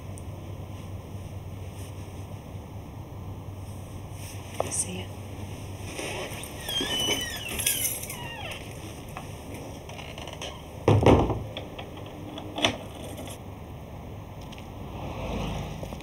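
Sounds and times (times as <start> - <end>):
door squeaks: 6.4 - 9.0, 9.9 - 10.8
wooden door shutting thud: 10.8 - 11.6.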